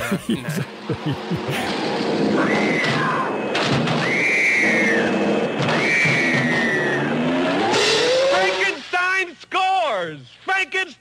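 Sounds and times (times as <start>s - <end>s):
person speaking: 0.0s - 1.7s
racing car engines: 0.0s - 8.9s
rising whine: 0.7s - 8.9s
high screeches: 1.6s - 8.9s.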